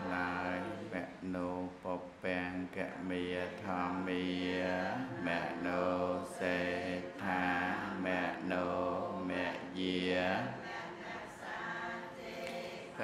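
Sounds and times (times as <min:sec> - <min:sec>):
man chanting: 0:00.0 - 0:10.6.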